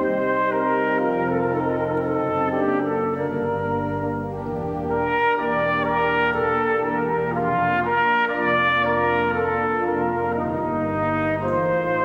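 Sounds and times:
pipe organ chords: 0.0 - 12.0
trumpet melody: 0.0 - 12.0.

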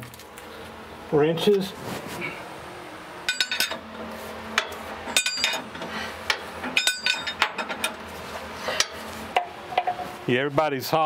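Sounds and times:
metal wrenches clinking: 3.3 - 3.8, 5.1 - 5.7, 6.7 - 8.0.

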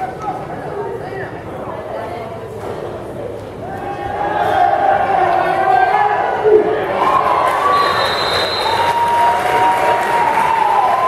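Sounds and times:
football crowd cheering and yelling: 3.6 - 11.0.

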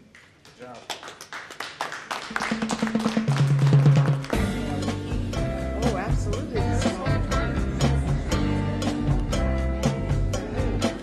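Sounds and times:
people clapping: 0.0 - 4.8
background music with low notes: 4.2 - 11.0.

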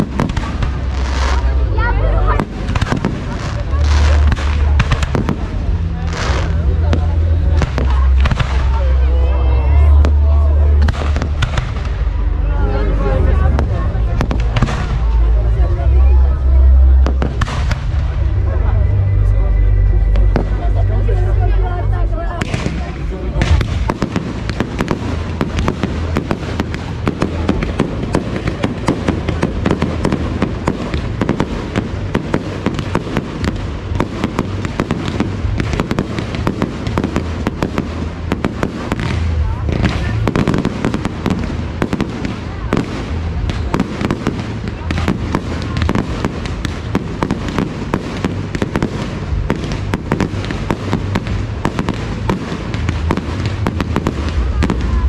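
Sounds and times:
fireworks bangs and crackle: 0.0 - 21.5, 22.3 - 55.0.

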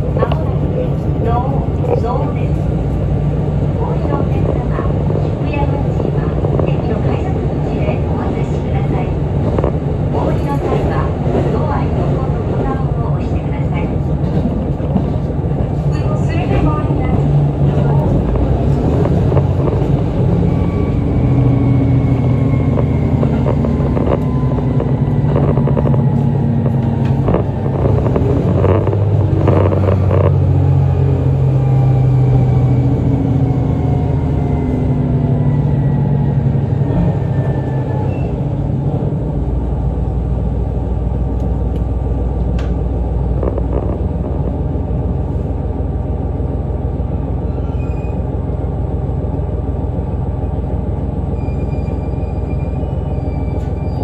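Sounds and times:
train engine and wheel drone: 0.0 - 54.0.

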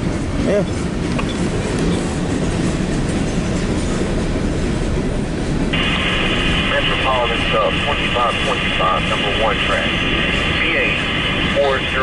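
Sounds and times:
freight train wheels rumbling: 0.0 - 12.0
radio scanner voice transmission: 5.8 - 12.0.

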